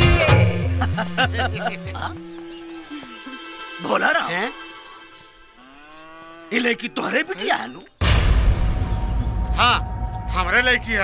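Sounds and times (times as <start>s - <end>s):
cattle mooing: 5.5s - 7.0s.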